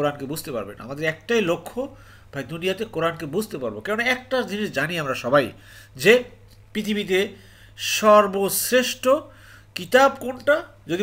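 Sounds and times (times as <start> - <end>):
person speaking: 0.0 - 11.0
sharp intake of breath: 1.9 - 2.4, 5.6 - 6.0, 7.4 - 7.8, 9.3 - 9.8.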